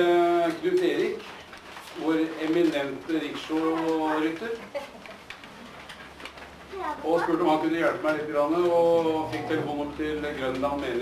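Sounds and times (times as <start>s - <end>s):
person speaking: 6.7s - 11.0s.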